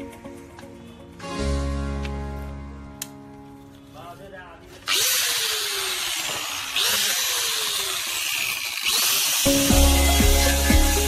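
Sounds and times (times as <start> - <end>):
background music: 0.0 - 4.5, 9.5 - 11.0
angle grinder grinding metal: 4.8 - 11.0.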